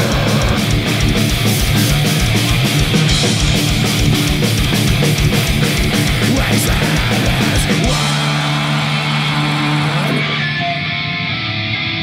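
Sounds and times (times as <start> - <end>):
distorted electric guitars and bass: 0.0 - 12.0
drums: 0.0 - 12.0.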